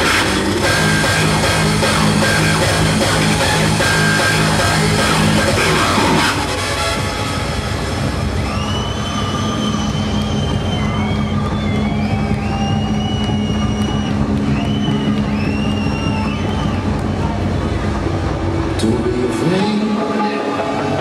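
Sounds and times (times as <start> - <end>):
hardstyle music: 0.0 - 8.5
loud crowd noise: 0.0 - 21.0.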